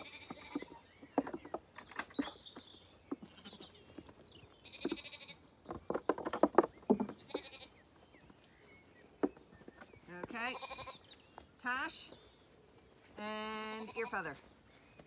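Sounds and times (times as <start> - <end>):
lambs bleating: 0.0 - 0.7, 4.6 - 5.4, 7.2 - 7.8, 10.4 - 11.0, 13.6 - 14.4
knocks and clatter: 5.6 - 7.5.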